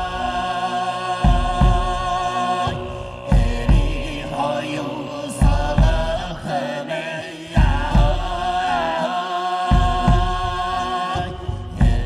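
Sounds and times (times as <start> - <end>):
throat singing: 0.0 - 12.0
low drum beats: 1.2 - 4.4, 5.3 - 6.5, 7.6 - 8.9, 9.7 - 12.0.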